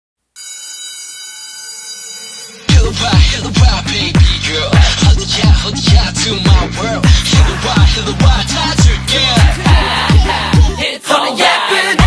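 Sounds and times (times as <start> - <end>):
electric bell ringing: 0.4 - 2.8.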